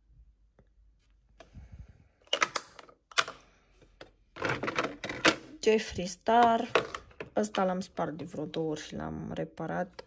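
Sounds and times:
plastic compacts clattering: 2.2s - 5.6s, 6.3s - 8.4s
plastic compacts clicking: 2.2s - 5.6s.

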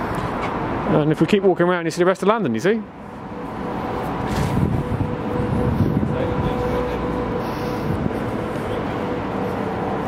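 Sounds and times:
distant city traffic rumble: 0.0s - 10.0s
faint constant hum: 0.0s - 10.0s.

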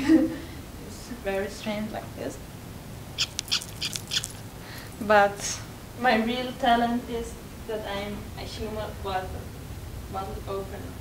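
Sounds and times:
squeaky eye clicks: 3.2s - 4.4s.

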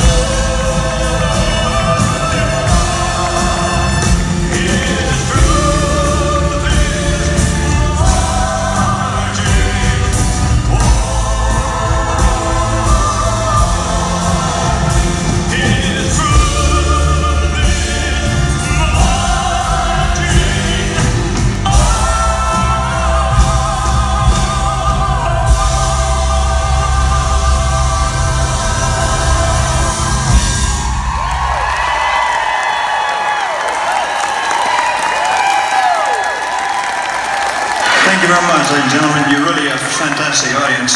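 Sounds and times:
live band with vocal group: 0.0s - 38.3s
audience cheering and whooping: 30.2s - 40.9s.

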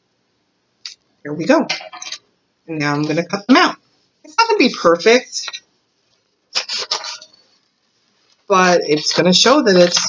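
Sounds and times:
scissors cutting paper: 6.6s - 7.3s.

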